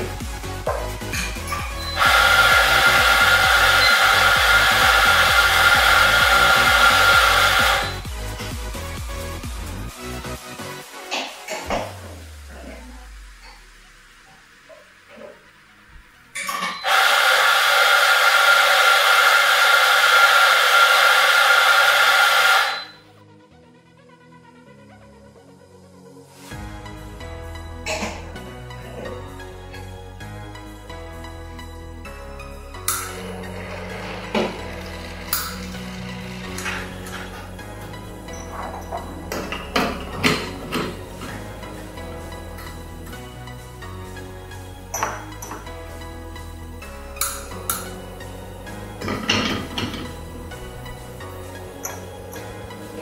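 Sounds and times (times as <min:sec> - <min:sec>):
background music: 0:00.0 - 0:53.0
coffee grinder motor whine: 0:01.6 - 0:08.2, 0:16.5 - 0:23.0, 0:32.8 - 0:42.7.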